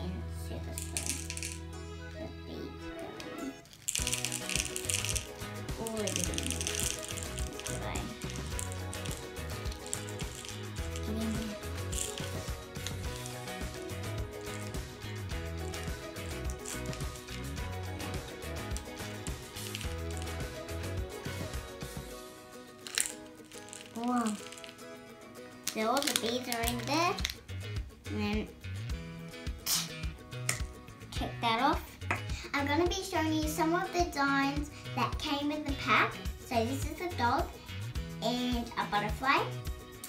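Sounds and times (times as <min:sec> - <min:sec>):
background music: 0:00.0 - 0:40.0
plastic beads clicking and rattling: 0:00.8 - 0:01.6, 0:03.6 - 0:14.9, 0:15.6 - 0:22.0, 0:22.8 - 0:25.0, 0:25.6 - 0:27.4.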